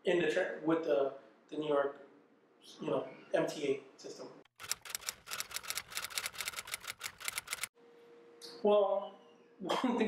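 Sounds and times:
typewriter keys clacking: 4.6s - 7.7s.

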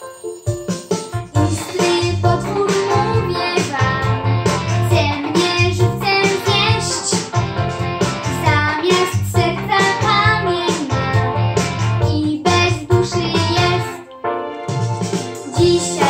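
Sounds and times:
instrumental backing track: 0.0s - 16.0s
boy singing: 1.3s - 4.2s, 4.8s - 7.2s, 8.4s - 11.3s, 12.1s - 14.0s, 15.4s - 16.0s.

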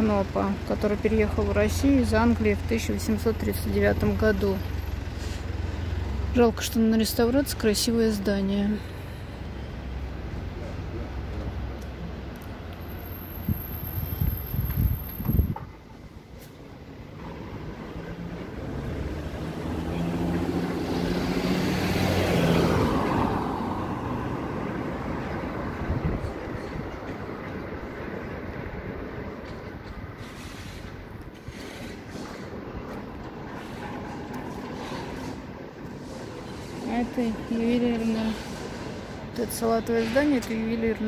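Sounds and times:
vehicle passing: 17.0s - 41.0s.

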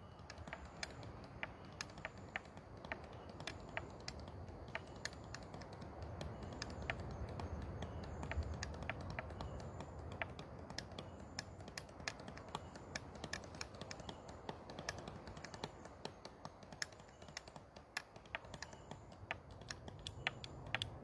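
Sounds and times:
faint steady hiss: 0.0s - 21.0s
light sharp clicks: 0.0s - 21.0s.

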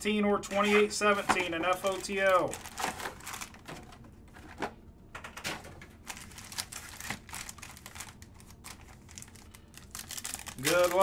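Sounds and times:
card packs clicking and tapping: 0.6s - 11.0s.

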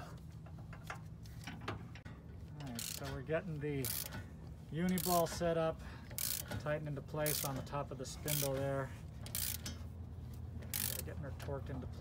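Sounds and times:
hand ratchet clicking: 2.7s - 3.2s, 3.8s - 4.2s, 4.9s - 5.4s, 6.0s - 6.6s, 7.2s - 7.6s, 8.3s - 8.6s, 9.2s - 9.9s, 10.6s - 11.1s.

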